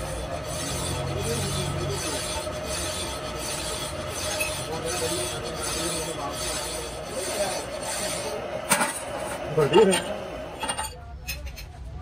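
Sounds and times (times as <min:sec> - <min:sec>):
file rasping on spinning lathe shaft: 0:00.0 - 0:10.8.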